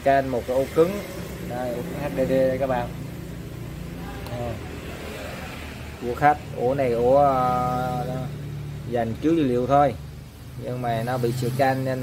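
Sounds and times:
computer fans humming: 0.0 - 12.0.

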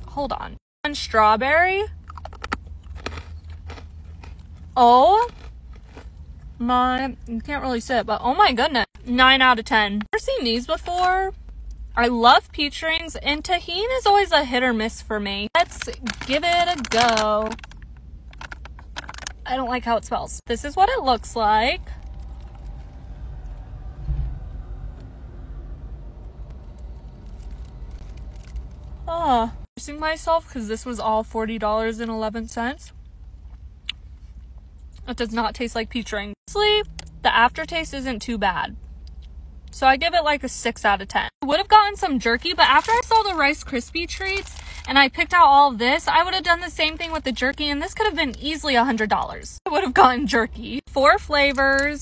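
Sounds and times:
low rumble inside car: 0.0 - 52.0
person chewing candy: 1.9 - 6.6.

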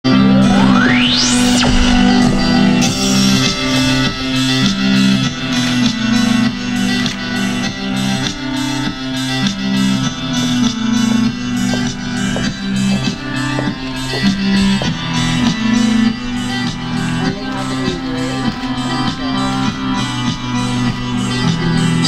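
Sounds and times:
repeating bass line: 0.1 - 7.0
music with steady beat: 0.1 - 22.0.

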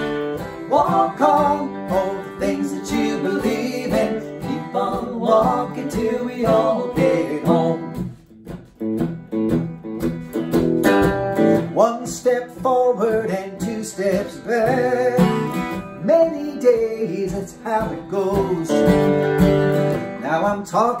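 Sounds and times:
man singing: 0.0 - 8.0, 11.6 - 19.2, 20.1 - 21.0
acoustic guitar strumming: 0.0 - 21.0
electric guitar: 0.0 - 21.0.

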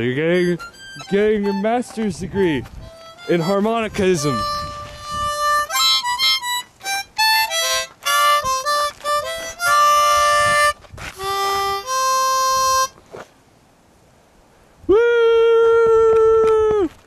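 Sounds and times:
harmonica notes and chords: 0.0 - 13.2.

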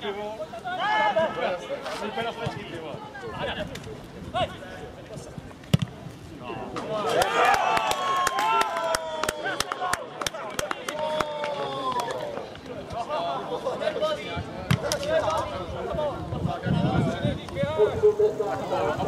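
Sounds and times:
ball kicked with sharp thud: 5.7 - 6.0
people shouting and cheering: 6.9 - 12.4
people clapping: 7.1 - 12.3.

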